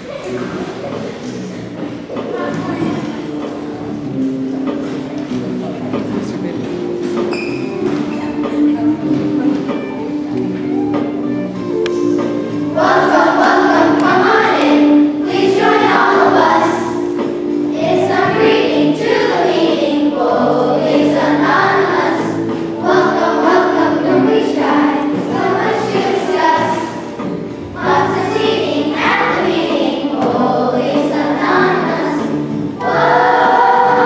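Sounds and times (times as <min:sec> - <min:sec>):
sustained instrumental notes: 0:03.0 - 0:34.0
children singing in unison: 0:12.5 - 0:34.0.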